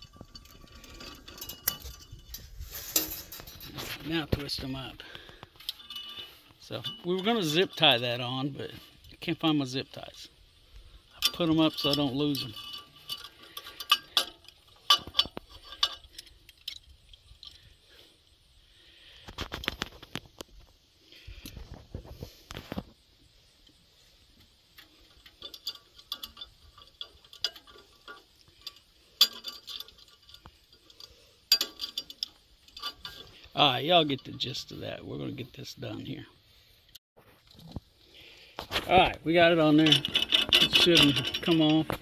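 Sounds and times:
rough rustling noise: 0:00.0 - 0:18.2, 0:18.8 - 0:42.0
metallic clicks and scrapes of wire: 0:00.0 - 0:36.0, 0:36.8 - 0:42.0.

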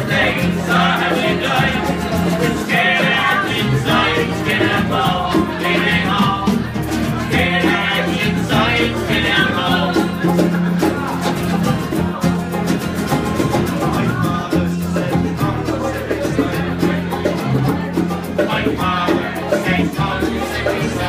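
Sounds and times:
acoustic guitars strumming: 0:00.0 - 0:21.0
banjo strumming: 0:00.0 - 0:21.0
people singing: 0:00.0 - 0:21.0.

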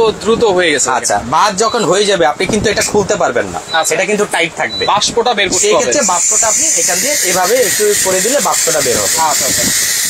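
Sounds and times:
pressure cooker venting steam: 0:05.6 - 0:10.0.

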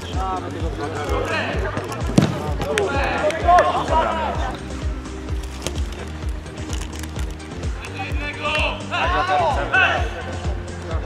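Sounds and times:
players shouting: 0:00.1 - 0:05.1, 0:07.4 - 0:10.6
football kick thud: 0:02.1 - 0:02.8.

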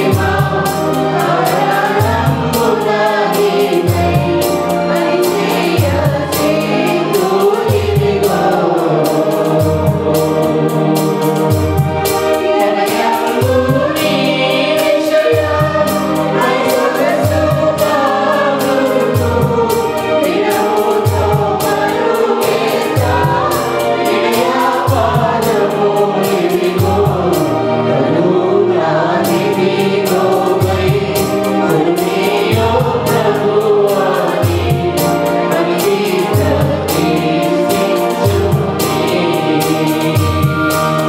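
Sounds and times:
choir singing worship song: 0:00.0 - 0:41.0.

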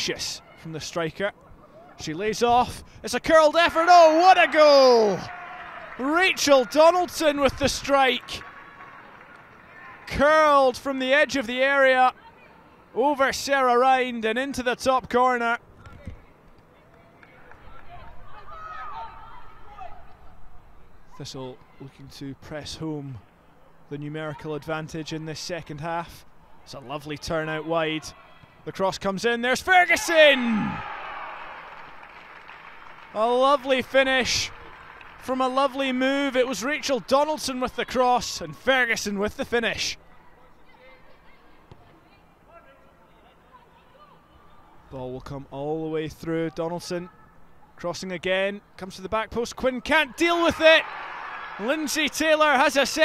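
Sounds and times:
distant voices shouting: 0:29.7 - 0:31.5.

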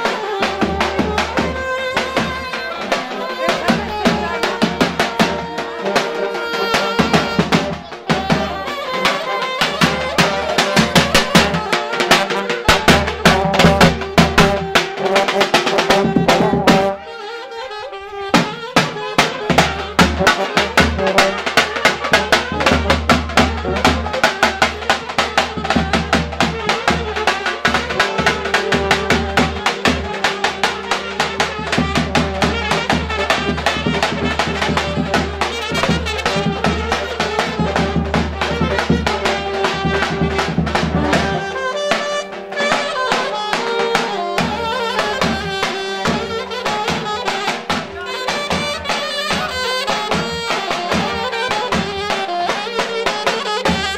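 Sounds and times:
reed wind instrument melody: 0:00.0 - 0:53.9
bass drum beating: 0:19.4 - 0:41.6.

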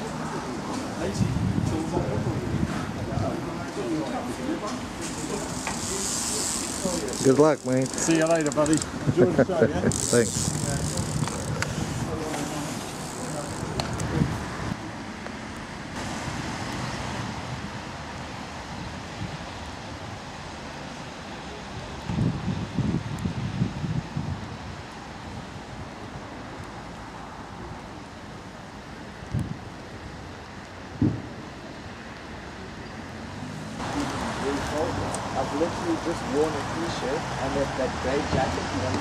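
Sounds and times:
road traffic: 0:00.0 - 0:39.0
wind on microphone: 0:01.0 - 0:03.7, 0:05.1 - 0:14.8, 0:21.8 - 0:26.2, 0:30.9 - 0:31.4
gusty low rumbles: 0:01.1 - 0:03.4.

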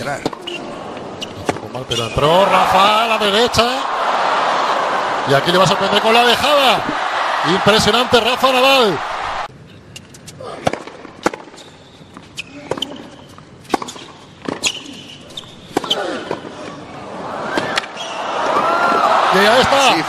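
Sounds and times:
hushed stadium crowd: 0:00.6 - 0:09.5, 0:16.7 - 0:20.0
racket striking ball: 0:10.6 - 0:11.6
tennis ball bouncing: 0:10.6 - 0:11.6.

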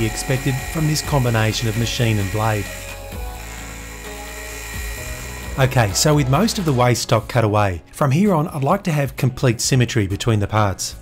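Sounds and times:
scroll saw cutting metal: 0:00.0 - 0:06.9
soft background music: 0:00.0 - 0:11.0.

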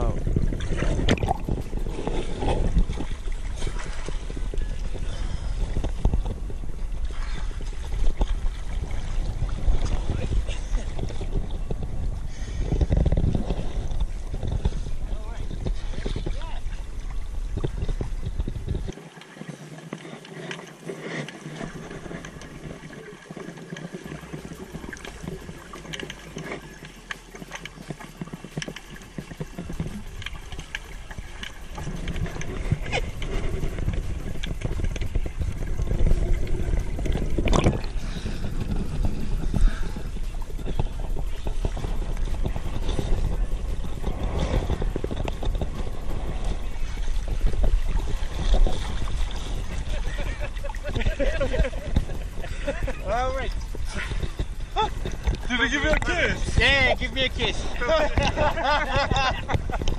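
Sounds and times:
rushing water and bubbles: 0:00.0 - 0:59.9
underwater clicks: 0:00.0 - 0:59.9
muffled underwater noise: 0:09.1 - 0:59.9.

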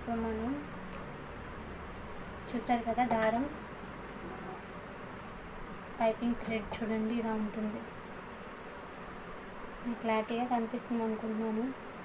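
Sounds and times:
speech: 0:00.0 - 0:00.7, 0:02.5 - 0:03.6, 0:06.0 - 0:07.9, 0:09.8 - 0:11.8
steady background hiss: 0:00.0 - 0:12.0.

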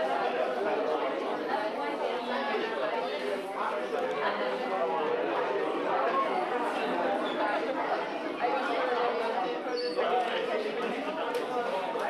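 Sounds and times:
murmur of overlapping voices: 0:00.0 - 0:12.0.

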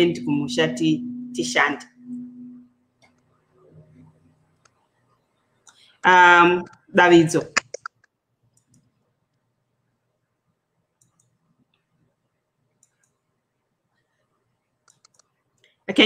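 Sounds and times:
person speaking: 0:00.0 - 0:02.6, 0:06.0 - 0:07.9
faint clicks: 0:07.6 - 0:09.4, 0:11.0 - 0:11.9, 0:12.7 - 0:13.2, 0:14.8 - 0:15.8.

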